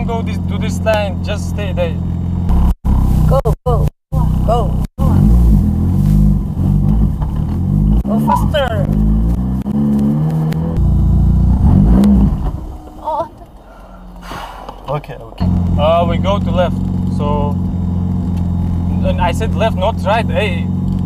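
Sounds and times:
car engine revving hard: 5.0s - 12.8s.

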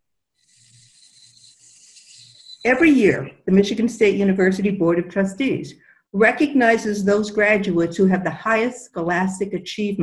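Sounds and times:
thin steady tone: 0.4s - 3.0s.

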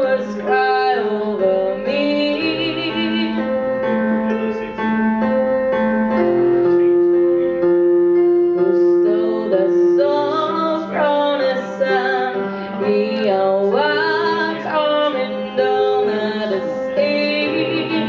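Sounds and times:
woman singing: 0.0s - 3.6s, 8.6s - 18.0s
piano accompaniment: 0.0s - 18.0s.

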